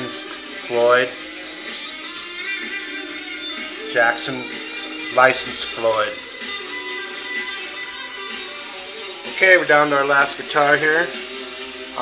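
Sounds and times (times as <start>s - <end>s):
electric guitar notes ringing: 0.0s - 12.0s.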